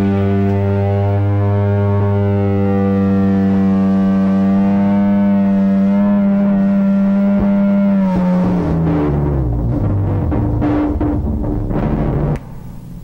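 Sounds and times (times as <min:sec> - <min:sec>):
electric guitar droning note: 0:00.0 - 0:13.0.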